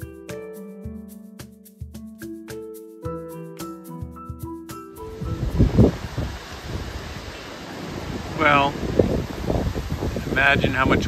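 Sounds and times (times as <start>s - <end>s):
wind rushing through trees: 4.8s - 11.0s
wind buffeting microphone: 5.0s - 11.0s.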